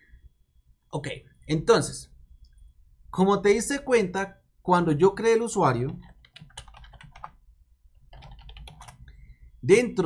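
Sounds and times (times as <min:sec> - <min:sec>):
computer keyboard typing: 0:05.8 - 0:07.4, 0:08.0 - 0:09.1.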